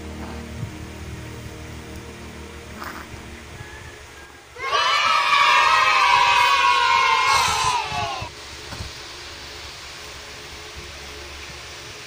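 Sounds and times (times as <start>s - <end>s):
children cheering yay: 3.6s - 8.3s.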